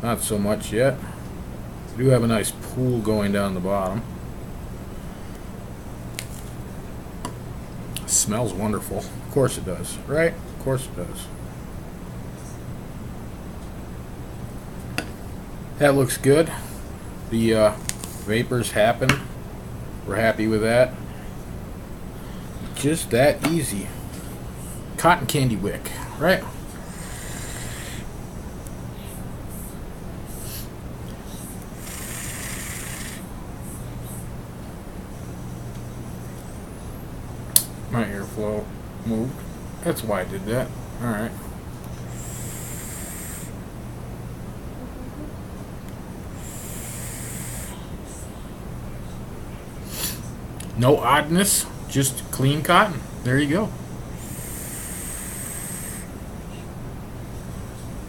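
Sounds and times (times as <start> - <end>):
vape atomizer hissing: 26.8 - 28.1, 31.8 - 33.3, 42.1 - 43.6, 46.4 - 47.8, 54.2 - 56.1.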